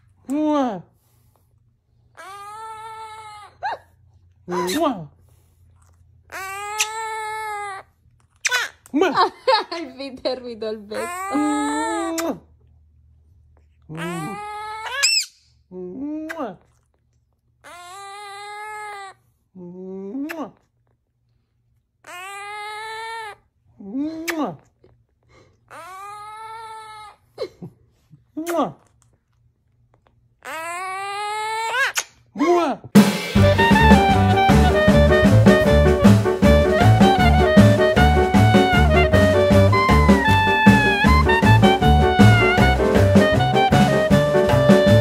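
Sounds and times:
parrot wailing call: 0:02.2 - 0:03.8, 0:06.3 - 0:07.8, 0:11.0 - 0:12.2, 0:14.0 - 0:15.4, 0:22.0 - 0:23.4, 0:30.4 - 0:32.0
parakeet calling: 0:06.3 - 0:07.2, 0:11.0 - 0:12.2, 0:14.0 - 0:15.4
parakeet chirp: 0:14.0 - 0:15.5.

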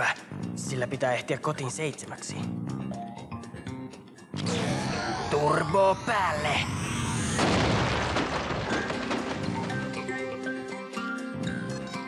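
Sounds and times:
action music: 0:02.4 - 0:12.0
cartoon wall crash boom: 0:04.4 - 0:09.7.

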